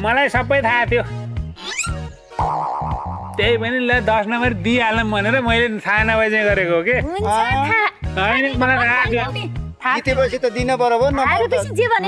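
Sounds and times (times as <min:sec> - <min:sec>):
comedy music with bass line: 0:00.4 - 0:06.2, 0:07.0 - 0:12.0
cartoon boing sound effect: 0:01.6 - 0:03.5
warbling wobbling tone: 0:02.4 - 0:03.8.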